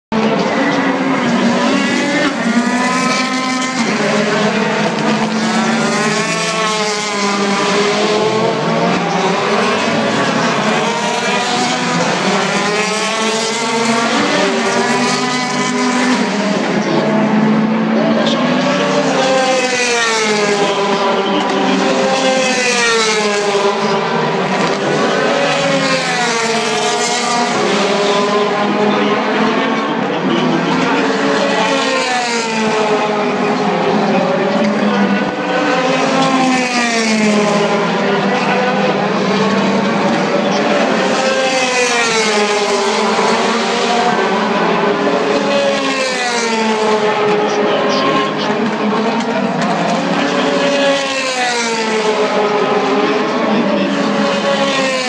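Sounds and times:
racing car engines passing: 0:00.1 - 0:55.0.

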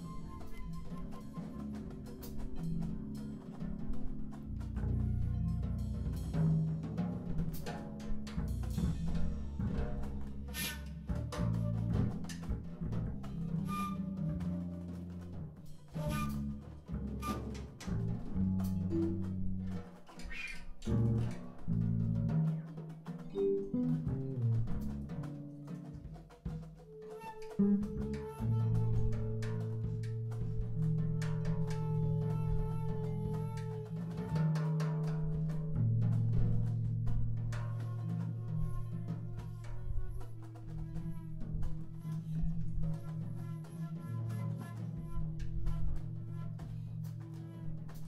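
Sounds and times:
free jazz drum kit: 0:00.0 - 0:48.0
low pitched notes: 0:23.3 - 0:24.9.

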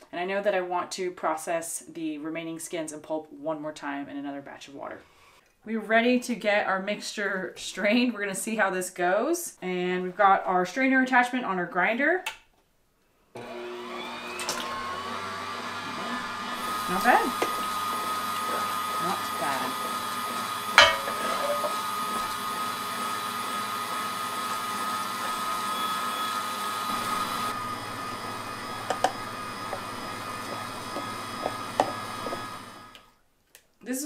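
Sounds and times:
electric meat grinder running: 0:13.4 - 0:33.1.

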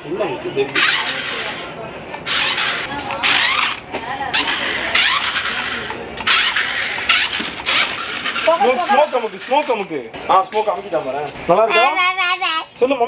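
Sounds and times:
toy car motor and wheels: 0:00.7 - 0:10.0.

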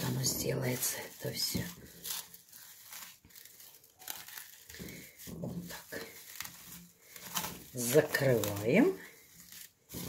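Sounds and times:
cling film crinkling: 0:00.0 - 0:10.0.

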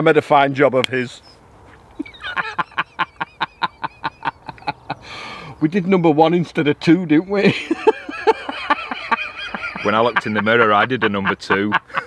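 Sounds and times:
man laughing in staccato bursts: 0:02.0 - 0:05.0, 0:07.5 - 0:12.0.

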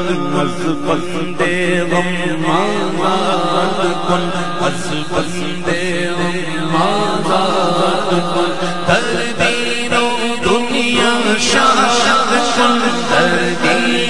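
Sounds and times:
man singing through microphone: 0:00.0 - 0:14.0.

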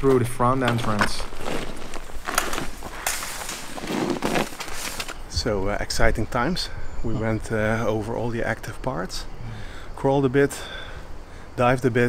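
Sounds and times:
scraping on asphalt: 0:00.6 - 0:05.3
backpack and tripod dragging: 0:00.7 - 0:05.3.

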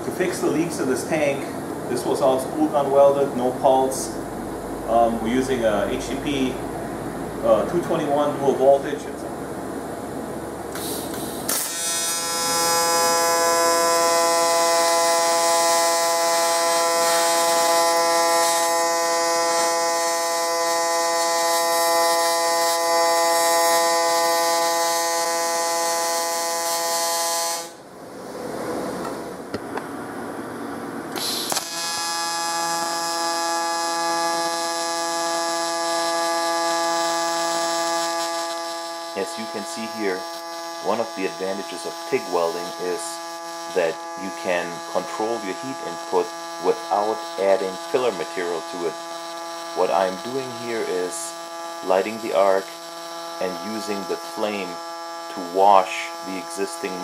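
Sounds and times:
welding arc buzzing: 0:00.0 - 0:28.4, 0:31.0 - 0:57.0.

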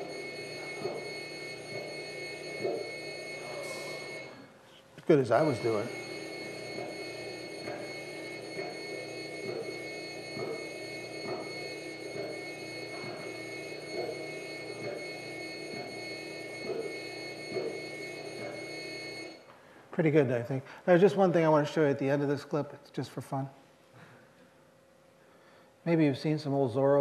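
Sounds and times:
robot arm motors humming: 0:00.0 - 0:04.5, 0:05.4 - 0:19.2.

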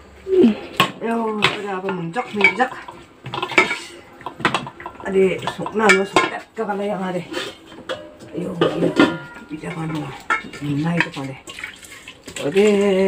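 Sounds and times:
metal pots and lids clattering: 0:00.6 - 0:13.0.

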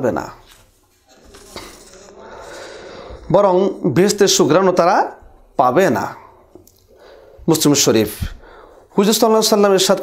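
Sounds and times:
man speaking: 0:00.0 - 0:00.5, 0:03.2 - 0:06.6, 0:07.4 - 0:10.0
faint room hiss: 0:00.0 - 0:10.0.

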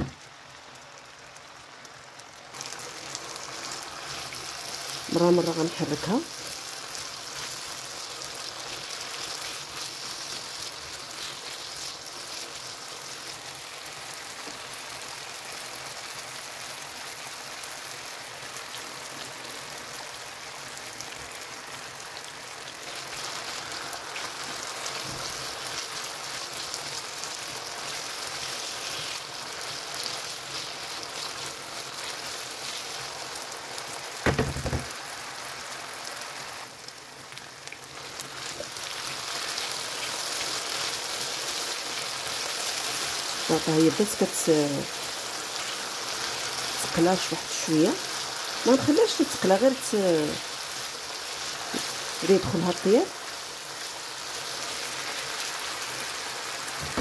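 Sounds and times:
potatoes sizzling in oil: 0:00.0 - 0:57.0
loud thump: 0:34.3 - 0:34.9, 0:56.8 - 0:57.0.

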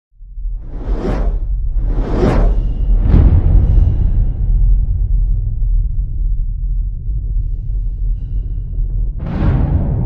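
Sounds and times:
deep low rumble: 0:00.2 - 0:10.0
whoosh sound effect: 0:00.7 - 0:02.7.

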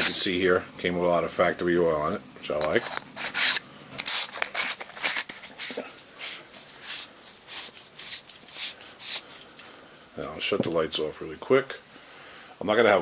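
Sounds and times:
hands rubbing on grip: 0:00.0 - 0:00.3, 0:02.7 - 0:10.4
threads scraping while screwing: 0:00.0 - 0:00.3, 0:02.6 - 0:09.9.

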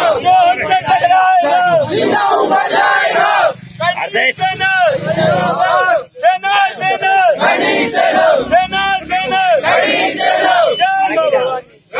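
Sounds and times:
crowd of men chanting: 0:00.0 - 0:03.7, 0:04.4 - 0:11.9.

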